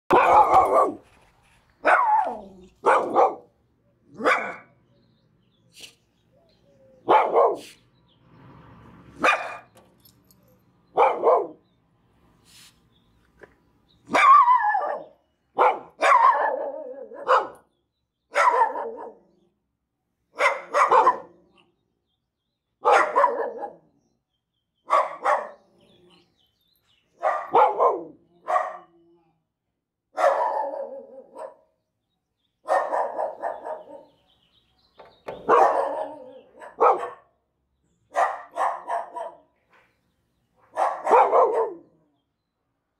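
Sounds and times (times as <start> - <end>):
small dogs barking: 0.1 - 1.1, 1.8 - 3.5, 4.1 - 4.8, 7.0 - 7.8, 9.2 - 9.7, 10.9 - 11.6, 14.1 - 17.7, 18.3 - 19.3, 20.3 - 21.4, 22.8 - 23.9, 24.8 - 25.8, 27.2 - 29.0, 30.1 - 31.7, 32.6 - 34.2, 35.3 - 37.4, 38.1 - 39.6, 40.6 - 42.0.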